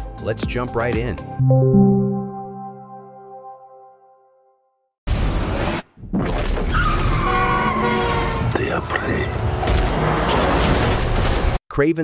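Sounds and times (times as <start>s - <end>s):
music: 0.0s - 4.9s
tyre squeal: 6.7s - 8.4s
cars running: 7.5s - 11.2s.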